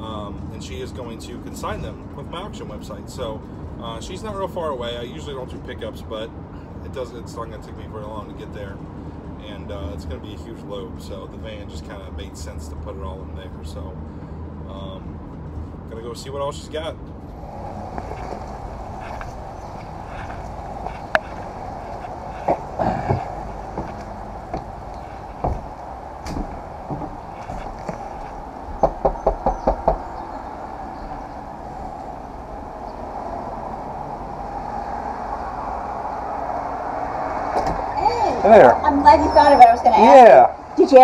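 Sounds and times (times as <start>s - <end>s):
steady background drone: 14.1s - 41.0s
single knocks: 19.1s - 30.2s
sharp raps at a door: 22.4s - 30.2s.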